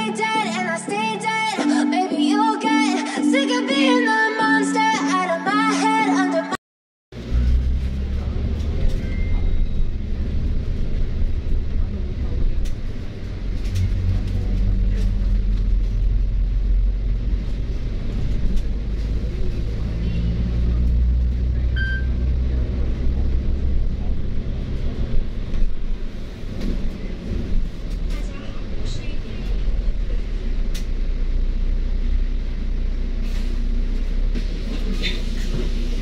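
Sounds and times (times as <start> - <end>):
bus engine rumble: 7.1 - 36.0
short high beep: 21.8 - 22.2.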